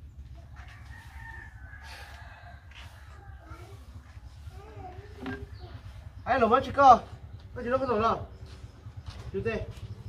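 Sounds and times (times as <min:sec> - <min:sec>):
rooster crowing: 0:00.6 - 0:03.1.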